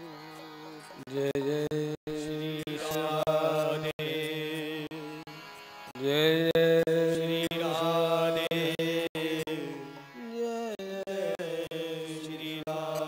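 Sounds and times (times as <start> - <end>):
man singing devotional song: 0.0 - 13.0.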